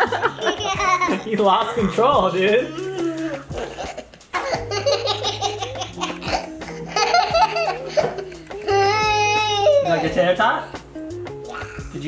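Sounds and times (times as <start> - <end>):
toddler laughing and giggling: 0.0 - 10.2, 11.5 - 12.0
background music: 0.0 - 12.0
toddler squealing: 2.6 - 4.6, 8.5 - 10.2, 11.5 - 12.0.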